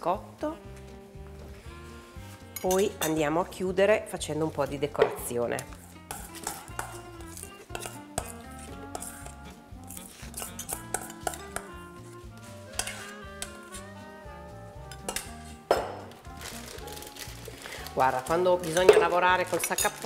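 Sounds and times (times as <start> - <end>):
light background music: 0.0 - 20.0.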